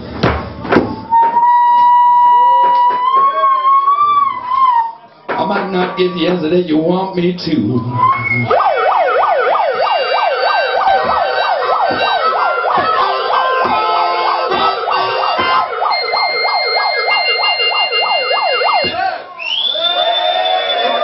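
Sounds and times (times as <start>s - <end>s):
megaphone siren yelp: 1.2s - 5.0s, 7.9s - 19.2s
low thumps: 8.0s - 19.0s.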